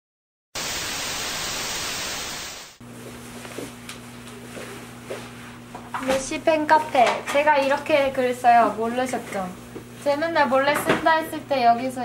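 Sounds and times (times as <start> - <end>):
static-like hiss burst: 0.6 - 2.8
low electrical hum: 2.8 - 12.0.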